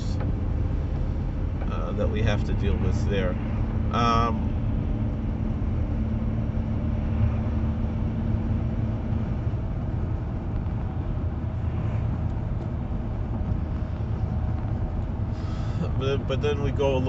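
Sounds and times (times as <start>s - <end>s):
car interior rumble: 0.0s - 17.0s.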